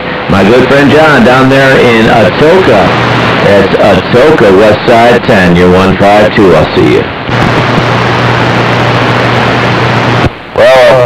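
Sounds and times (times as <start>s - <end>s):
low hum: 0.0s - 11.0s
radio static hiss: 0.0s - 11.0s.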